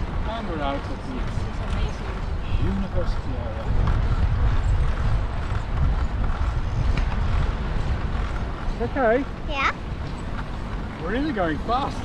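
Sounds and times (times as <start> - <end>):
bicycle tyre and road noise: 0.0 - 12.0
wind buffeting microphone: 0.0 - 12.0.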